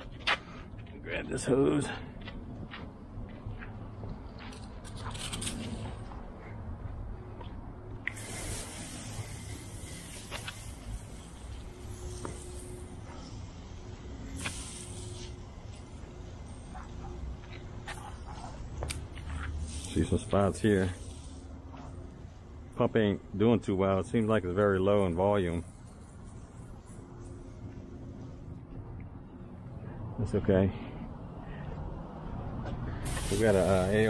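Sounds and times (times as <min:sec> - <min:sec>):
spray wand hissing: 0:08.1 - 0:16.2, 0:19.5 - 0:22.0, 0:33.0 - 0:34.0.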